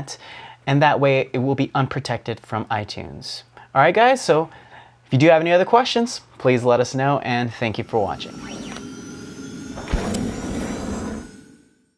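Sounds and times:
rushing whoosh: 0:07.6 - 0:11.9.

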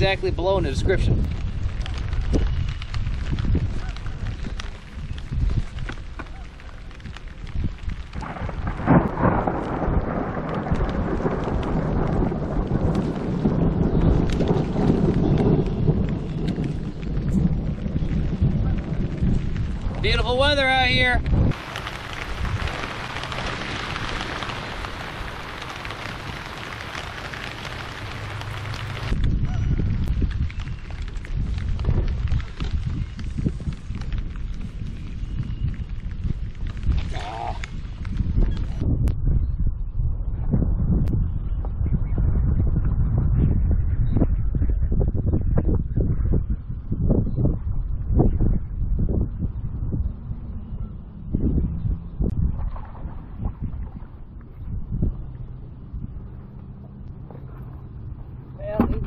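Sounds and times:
rain on water and boat: 0:00.0 - 0:39.1, 0:52.0 - 0:59.0
wind buffeting microphone: 0:00.0 - 0:59.0.

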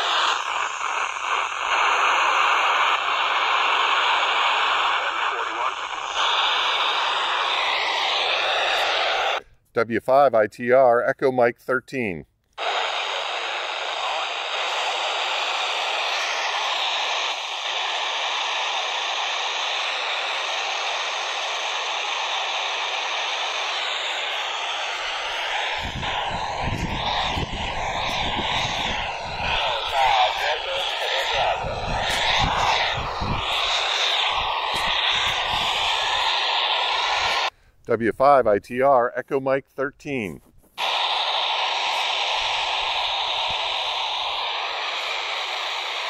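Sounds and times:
radio static hiss: 0:00.0 - 0:09.4, 0:12.6 - 0:46.0
low rumbles: 0:25.1 - 0:37.4
broken voice fragments: 0:25.3 - 0:35.8.

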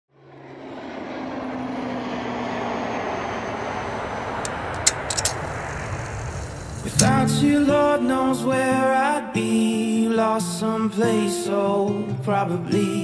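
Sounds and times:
aircraft engine drone: 0:00.1 - 0:08.9
sharp clicks: 0:04.4 - 0:06.2.

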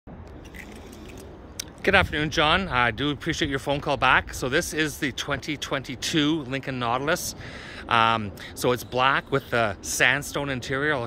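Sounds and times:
low background hum: 0:00.1 - 0:11.0
man talking: 0:01.6 - 0:11.0.

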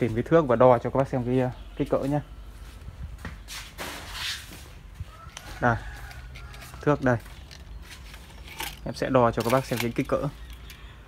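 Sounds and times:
soft shuffling footsteps: 0:01.8 - 0:08.4
rustling of handling: 0:03.4 - 0:10.8.

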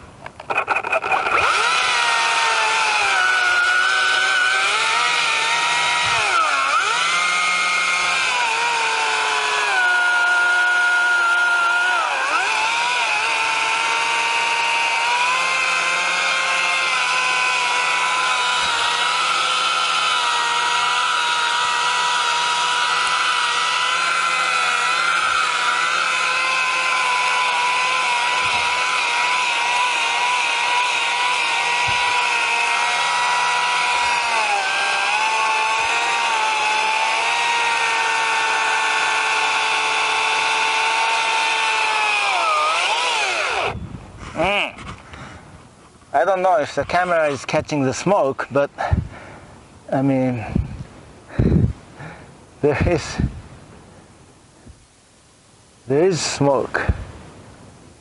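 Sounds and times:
chainsaw cutting wood: 0:00.3 - 0:43.8.

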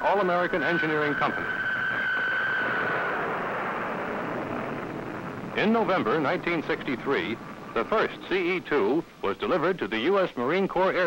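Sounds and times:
jet engine running: 0:00.0 - 0:09.9
high whine: 0:00.0 - 0:10.1.

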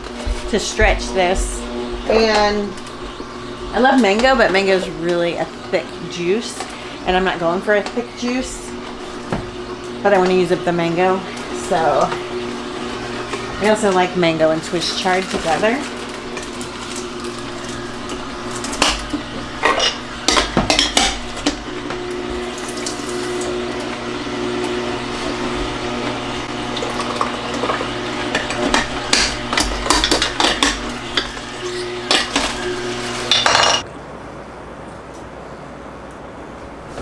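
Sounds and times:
juicer motor hum: 0:00.0 - 0:33.9.

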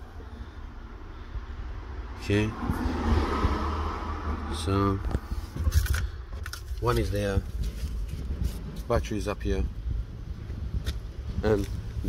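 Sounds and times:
low steady rumble: 0:00.0 - 0:12.0
paper rustling and scraping: 0:05.2 - 0:08.9.

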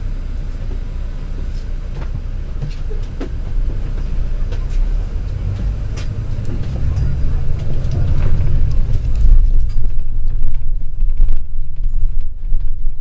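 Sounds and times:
bus engine and road noise: 0:00.0 - 0:13.0
rattles and clicks from bus body: 0:00.0 - 0:13.0.

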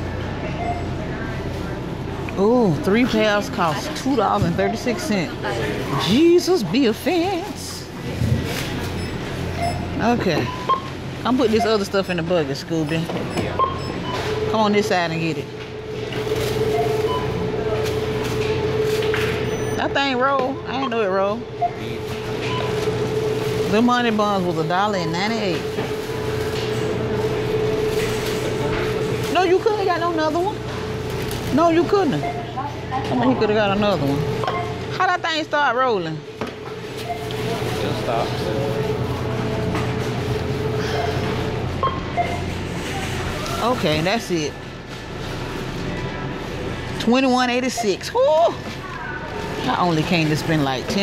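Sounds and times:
faint voices: 0:00.0 - 0:10.6, 0:11.2 - 0:36.4, 0:42.3 - 0:51.0
conveyor belt machine hum: 0:00.0 - 0:51.0.

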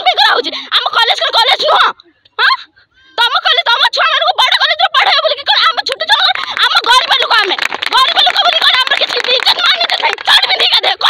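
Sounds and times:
woman speaking agitated: 0:00.0 - 0:11.0
women's voices overlapping: 0:00.0 - 0:11.0.

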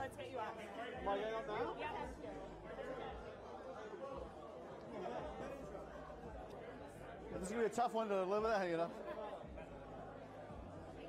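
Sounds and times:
chatter of many people: 0:00.0 - 0:11.0.

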